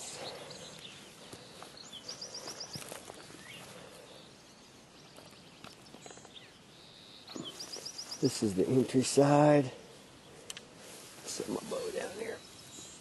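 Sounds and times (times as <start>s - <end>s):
footsteps in grass: 0.0s - 6.7s, 7.3s - 13.0s.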